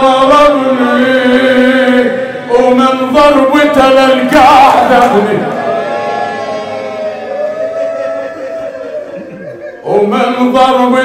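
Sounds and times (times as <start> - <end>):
voices chanting long notes: 4.0 - 9.9.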